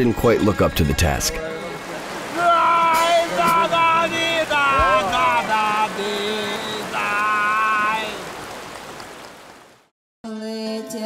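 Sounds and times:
man calling out: 0:00.0 - 0:08.3
river water rushing and splashing: 0:00.1 - 0:09.9.

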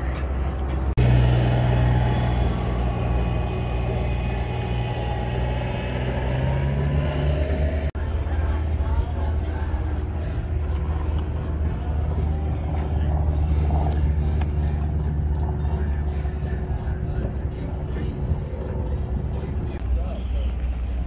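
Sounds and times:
vehicle engine rumbling: 0:00.0 - 0:21.0.

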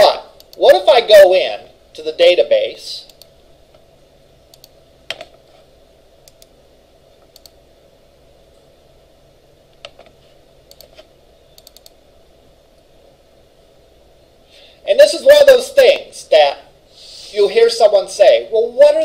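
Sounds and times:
faint room hum: 0:00.0 - 0:19.0
mouse and keyboard clicks: 0:10.7 - 0:12.0.

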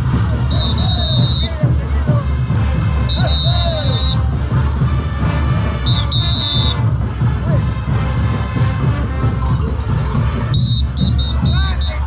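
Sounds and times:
parade band music with heavy bass: 0:00.0 - 0:12.0
shrill whistle blown: 0:00.4 - 0:01.6, 0:03.0 - 0:04.3, 0:05.8 - 0:06.9, 0:10.5 - 0:12.0.

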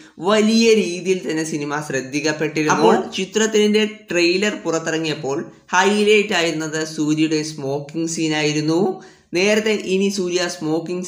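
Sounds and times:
narrator talking: 0:02.4 - 0:03.4.

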